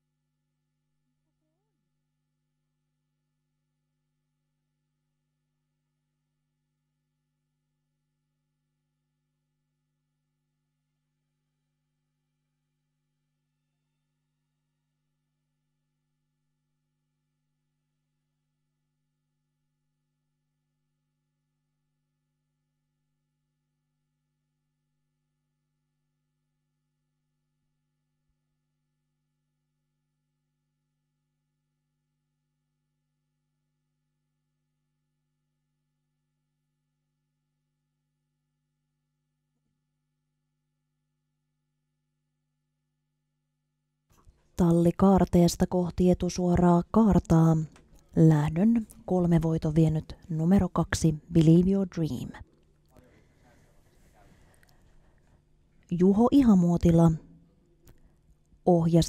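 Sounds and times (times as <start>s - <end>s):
faint electrical hum: 44.2s - 59.0s.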